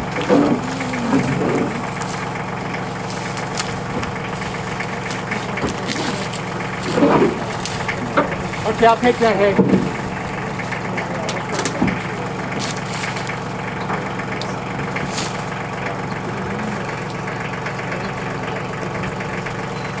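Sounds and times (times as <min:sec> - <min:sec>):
hay crackling: 0:00.0 - 0:18.8
truck engine idling: 0:00.0 - 0:20.0.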